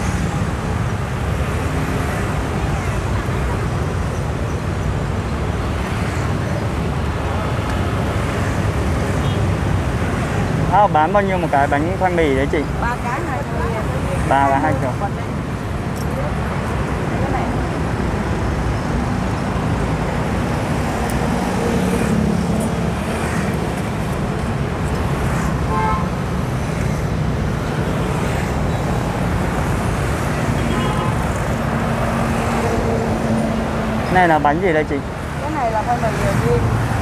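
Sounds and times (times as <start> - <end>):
cars passing close by: 0.0 - 37.0
city traffic noise: 0.0 - 37.0
motorbikes passing: 0.0 - 37.0.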